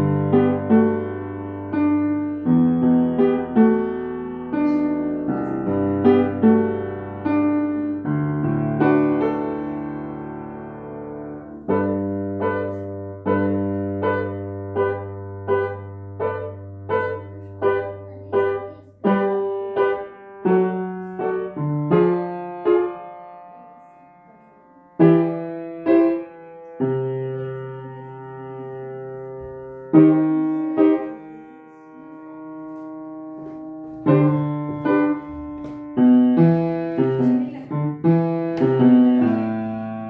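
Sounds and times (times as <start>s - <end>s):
solo piano piece: 0.0s - 40.0s.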